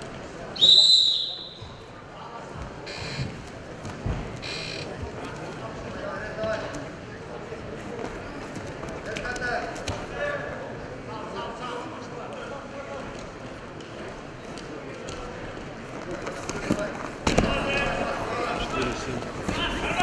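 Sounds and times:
crowd murmur: 0.0 - 20.0.

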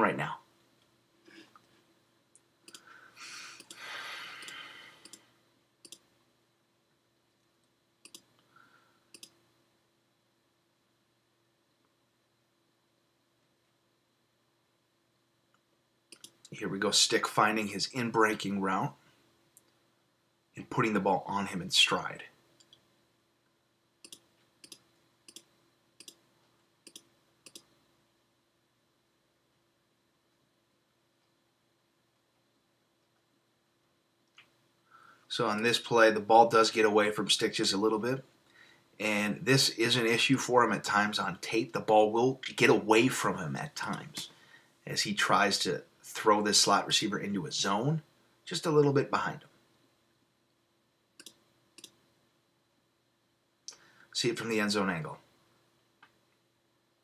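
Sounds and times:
computer mouse clicking: 2.4 - 2.9, 3.6 - 3.8, 4.4 - 5.2, 5.8 - 6.1, 8.0 - 8.5, 9.1 - 9.4, 16.1 - 16.6, 24.0 - 26.2, 26.8 - 27.8, 51.2 - 52.0.

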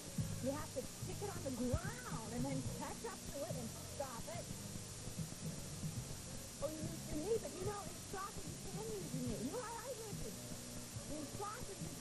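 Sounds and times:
low tape hum: 0.0 - 12.0.

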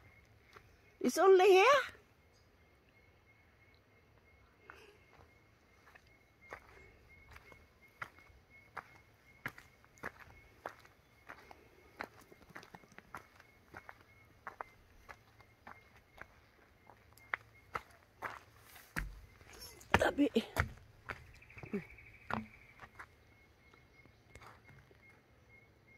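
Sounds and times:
footsteps crunching on dirt trail: 5.1 - 25.3.

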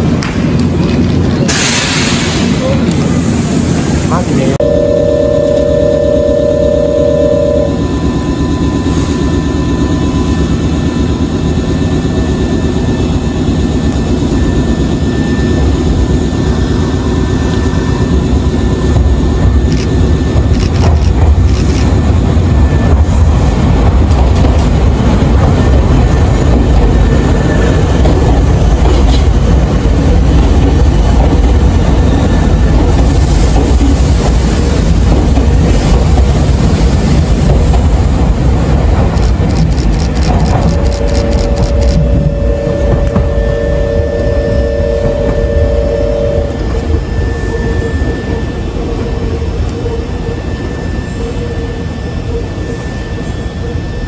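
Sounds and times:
train wheels rumbling: 0.0 - 54.0
sharp clicks: 39.1 - 42.0.

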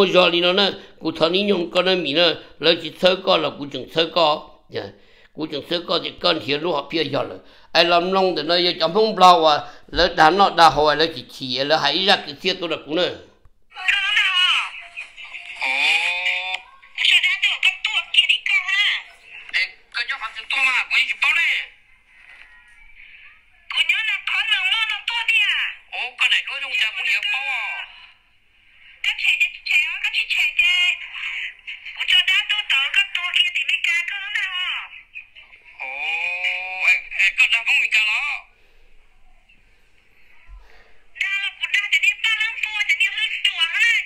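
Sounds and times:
person talking over phone: 13.7 - 28.2, 29.0 - 38.5, 41.2 - 44.0
person holding a vowel: 15.5 - 16.7.

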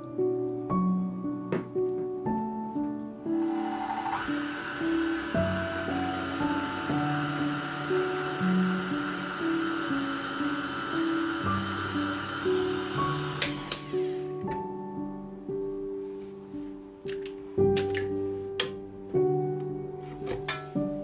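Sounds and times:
soft piano music: 0.0 - 21.0
stand mixer motor whining: 3.4 - 14.3.

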